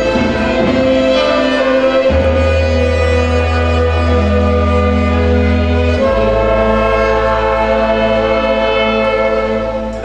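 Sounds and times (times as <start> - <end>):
orchestra sustained chord: 0.0 - 10.0.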